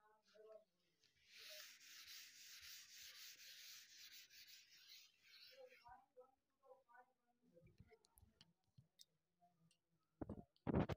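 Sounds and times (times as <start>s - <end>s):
duster rubbing on whiteboard: 1.2s - 5.8s.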